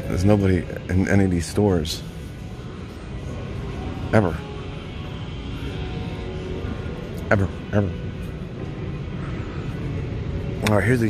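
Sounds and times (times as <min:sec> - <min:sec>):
background music: 0:00.0 - 0:11.0
low hum of store noise: 0:00.0 - 0:11.0.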